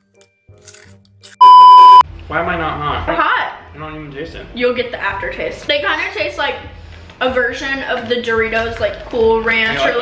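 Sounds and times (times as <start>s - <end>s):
electronic beep: 1.4s - 2.0s.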